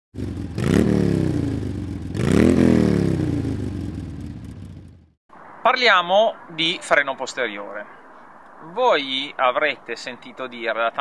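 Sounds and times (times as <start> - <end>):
motorcycle engine revving: 0.1 - 5.2.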